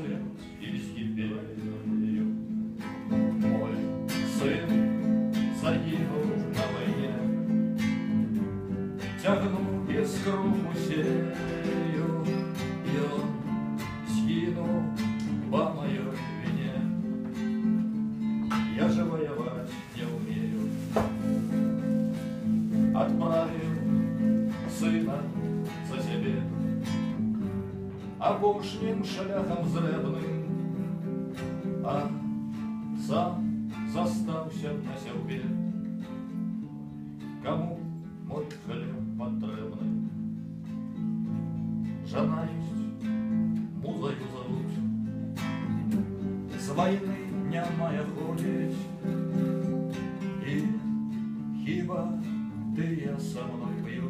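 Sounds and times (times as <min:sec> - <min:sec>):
man singing: 0:00.0 - 0:31.0, 0:31.6 - 0:35.8, 0:37.3 - 0:40.1, 0:42.0 - 0:45.1, 0:46.5 - 0:54.0
acoustic guitar strumming: 0:00.0 - 0:54.0.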